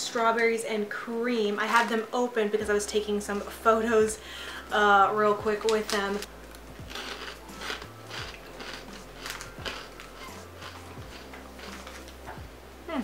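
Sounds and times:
person chewing crunchy crisps: 5.8s - 12.3s.

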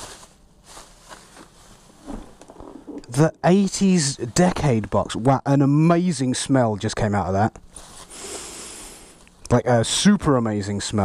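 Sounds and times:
bubble wrap rustling: 0.0s - 3.2s.

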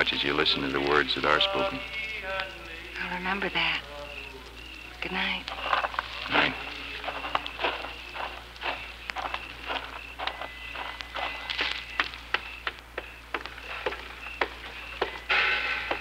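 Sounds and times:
crickets chirping: 0.0s - 16.0s
footsteps walking: 5.2s - 16.0s.

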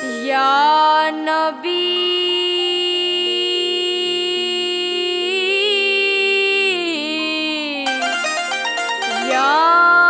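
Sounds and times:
harmonium: 0.0s - 10.0s.

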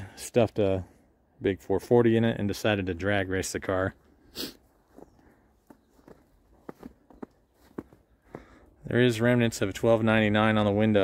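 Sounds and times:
person sniffing: 4.2s - 4.7s
footsteps on snow: 4.3s - 8.7s.

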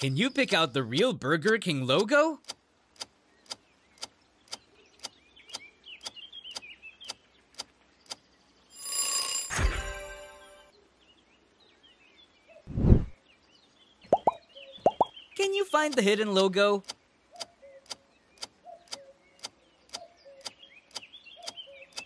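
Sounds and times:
whoosh: 12.7s - 13.2s.

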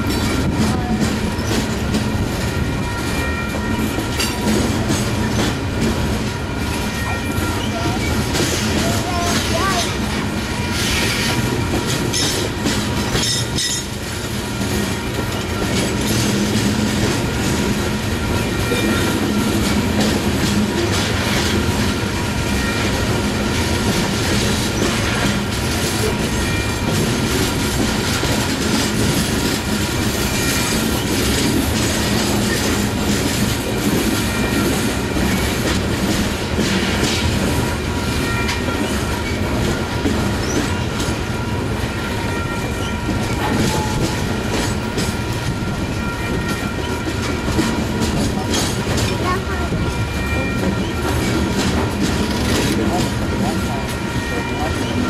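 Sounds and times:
clickety-clack of rail joints: 0.0s - 55.0s
freight train wheels rumbling on rail: 0.0s - 55.0s.

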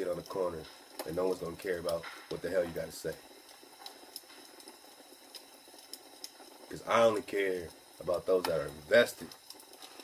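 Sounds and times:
fire crackling: 0.0s - 10.0s
low hiss: 0.0s - 10.0s.

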